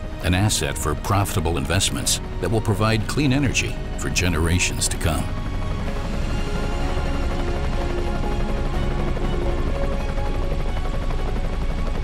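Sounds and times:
background music: 0.0s - 12.0s
helicopter rotor and engine: 0.0s - 12.0s.

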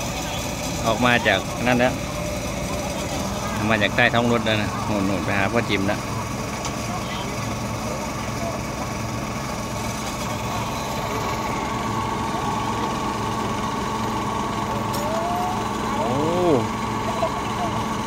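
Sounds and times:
steady engine whine: 0.0s - 18.0s
truck engine idling: 0.0s - 18.0s.

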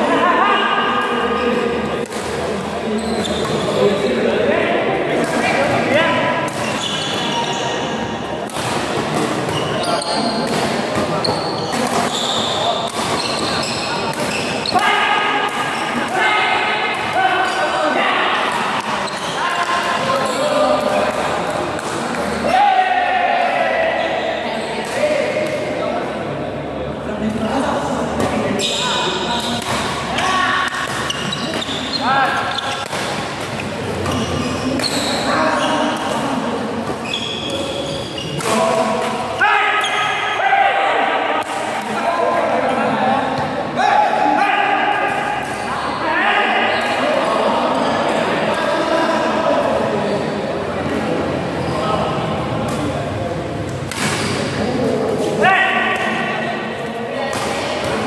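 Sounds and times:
people's voices: 0.0s - 58.0s
rackets hitting shuttlecock: 1.9s - 2.5s, 8.4s - 16.2s, 28.2s - 35.2s, 35.9s - 40.0s, 53.7s - 56.5s, 57.3s - 58.0s.

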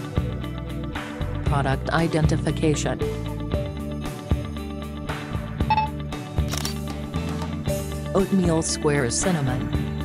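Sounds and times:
background music with steady beat: 0.0s - 10.0s
camera shutter click: 6.4s - 6.9s.

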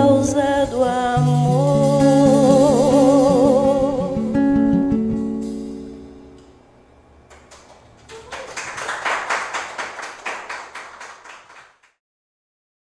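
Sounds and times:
people clapping: 7.3s - 12.0s.

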